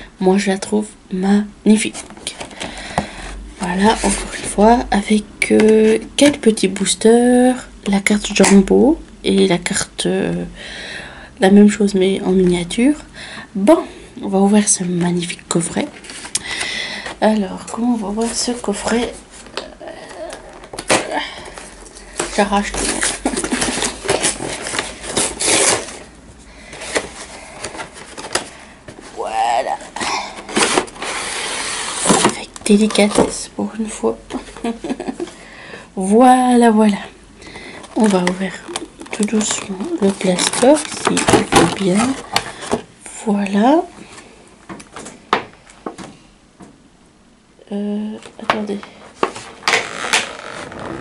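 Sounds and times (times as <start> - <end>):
plastic packaging crackling: 18.2 - 26.2, 29.8 - 33.4, 37.7 - 42.9
cardboard and plastic tearing: 19.4 - 26.1, 30.3 - 33.4, 37.9 - 42.8, 49.2 - 51.0.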